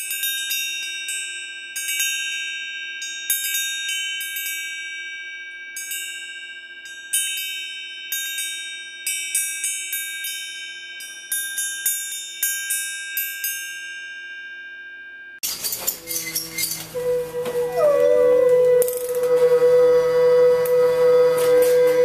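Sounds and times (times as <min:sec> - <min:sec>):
metal chimes ringing: 0:00.0 - 0:22.0.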